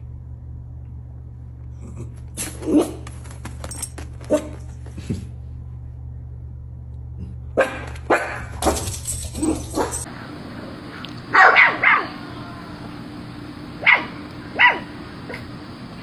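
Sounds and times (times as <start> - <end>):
low hum: 0.0 - 16.0
dog barking: 7.6 - 10.1, 11.3 - 12.2, 13.8 - 15.5.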